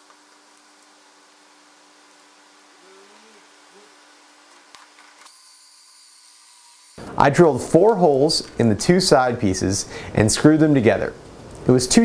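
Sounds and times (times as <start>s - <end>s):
faint rising and falling whines: 0.0s - 12.0s.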